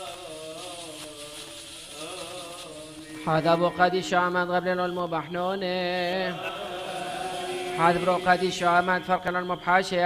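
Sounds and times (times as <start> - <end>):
person chanting liturgical chant: 0.0 - 10.0.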